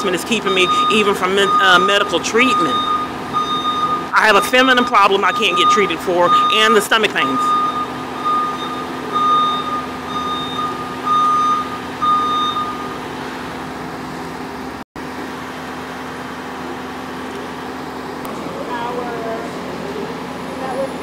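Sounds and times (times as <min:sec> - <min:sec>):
vehicle reversing alarm beeping: 0:00.0 - 0:13.4.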